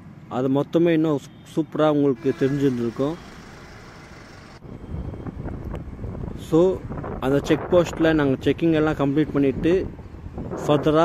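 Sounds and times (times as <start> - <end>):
vehicle wind and road noise: 0.0 - 11.0
person speaking: 2.1 - 3.4.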